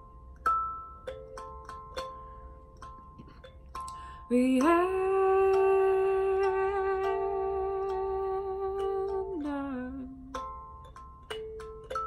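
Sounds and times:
plucked kalimba notes: 0:00.0 - 0:12.0
woman singing a long note: 0:04.3 - 0:10.3.

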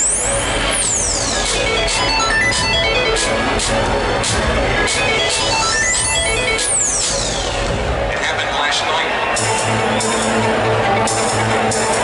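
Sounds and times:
high synth sweeps: 0:00.1 - 0:03.5, 0:05.2 - 0:07.6.

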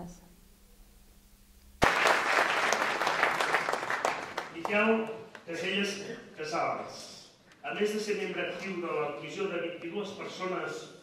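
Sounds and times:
audience applauding: 0:01.8 - 0:05.5.

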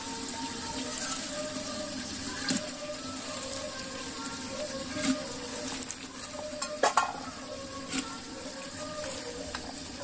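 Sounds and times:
vegetables sizzling in a pot: 0:00.0 - 0:10.0
bowl knocking against metal pot: 0:06.6 - 0:07.2.

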